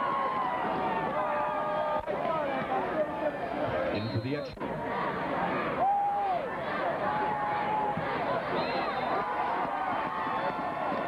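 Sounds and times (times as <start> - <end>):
crowd babble of voices: 0.0 - 11.0
long held shouts: 5.6 - 10.6.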